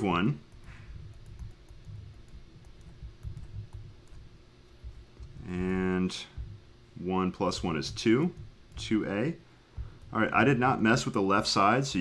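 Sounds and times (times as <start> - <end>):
stylus tapping on tablet screen: 0.6 - 6.7, 7.4 - 9.0, 9.7 - 10.5
low thumps: 1.0 - 6.8, 9.7 - 10.3.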